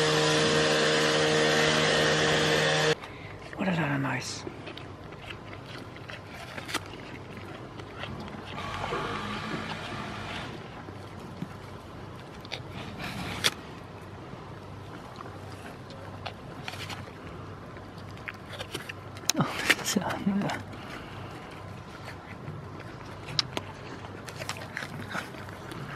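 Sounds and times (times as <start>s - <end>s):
loud machinery drone: 0.0s - 3.0s, 8.6s - 10.6s
goats crunching apple: 0.0s - 25.9s.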